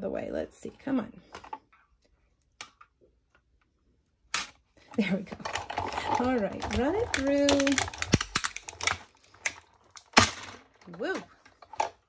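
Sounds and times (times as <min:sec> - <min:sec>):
plastic plate scraping: 0:05.3 - 0:09.7
plastic plates clicking and tapping: 0:05.4 - 0:10.4.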